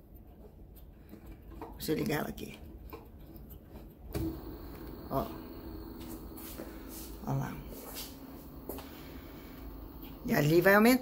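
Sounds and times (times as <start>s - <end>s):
faint motor hum: 4.1s - 11.0s.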